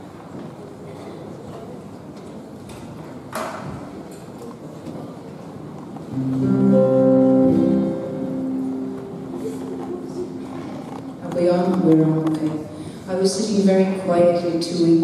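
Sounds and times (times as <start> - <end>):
acoustic guitar chord: 6.1 - 11.3.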